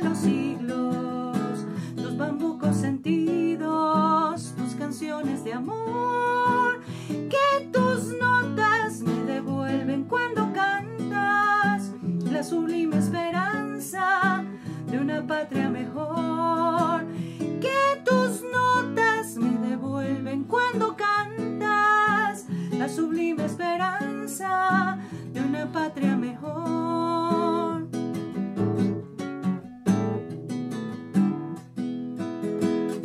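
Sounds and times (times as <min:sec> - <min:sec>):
woman singing with vibrato: 0:00.0 - 0:27.9
strummed classical guitar: 0:00.0 - 0:33.0.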